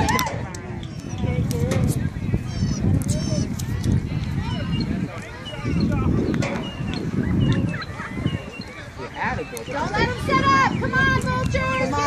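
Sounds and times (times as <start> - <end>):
distant people calling out: 0.0 - 12.0.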